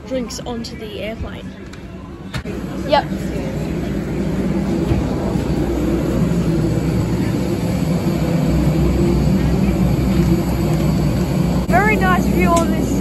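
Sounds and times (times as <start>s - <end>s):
jet airliner low drone: 0.0s - 13.0s.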